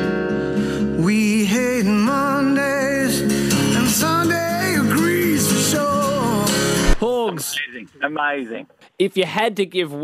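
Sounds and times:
acoustic guitar: 0.0s - 8.3s
man singing with vibrato: 0.9s - 7.0s.

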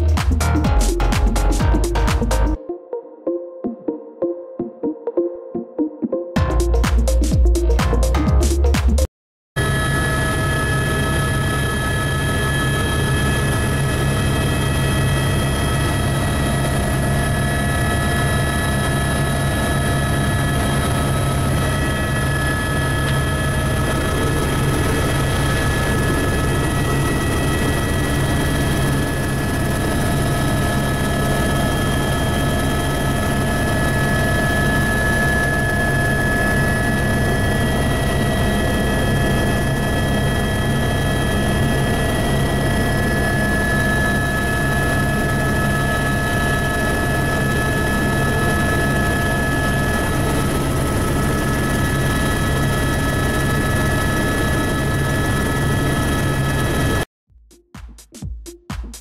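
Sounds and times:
helicopter engine and rotor drone: 0.0s - 2.6s, 9.6s - 57.1s.

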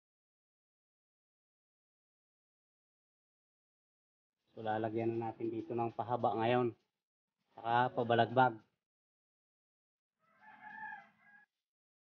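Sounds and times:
rooster crowing: 10.2s - 11.5s.

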